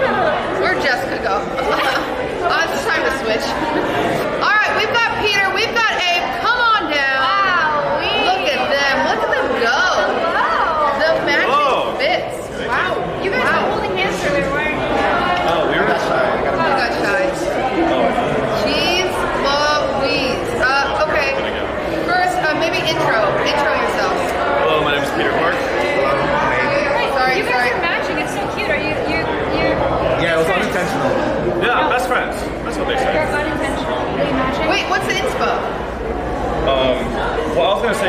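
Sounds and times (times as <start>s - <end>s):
indistinct chatter of voices: 0.0s - 38.0s.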